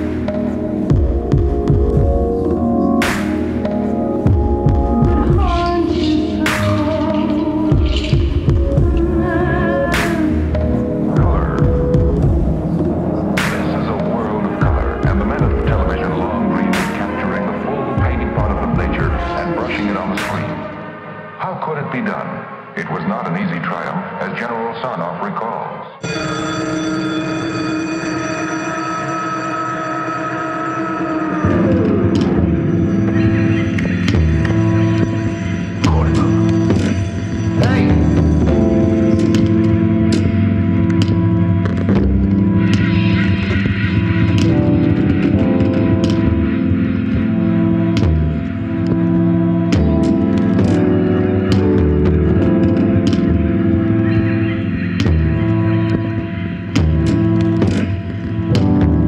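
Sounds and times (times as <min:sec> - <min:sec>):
low throbbing pulse: 0:00.0 - 0:21.4, 0:30.8 - 0:59.0
sustained synth tones: 0:00.0 - 0:59.0.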